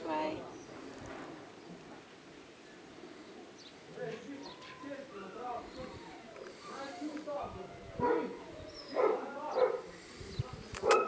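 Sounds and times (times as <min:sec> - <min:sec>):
sharp click: 0:10.7 - 0:11.0.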